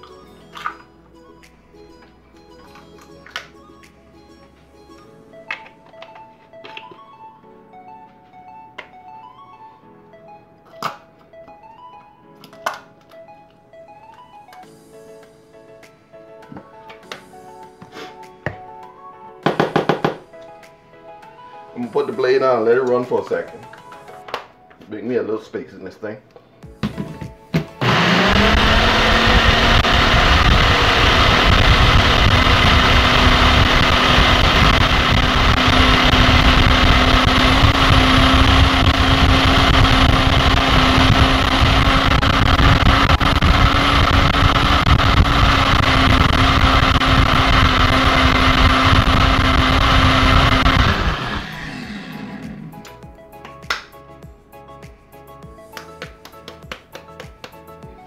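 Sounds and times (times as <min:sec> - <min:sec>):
blender motor whine: 0:27.8 - 0:52.9.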